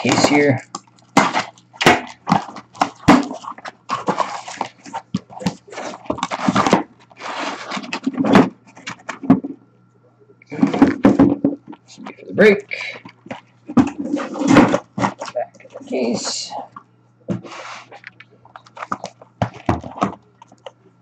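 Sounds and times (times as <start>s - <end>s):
boxes knocking on cardboard: 1.1s - 6.9s, 10.5s - 11.7s, 18.9s - 20.2s.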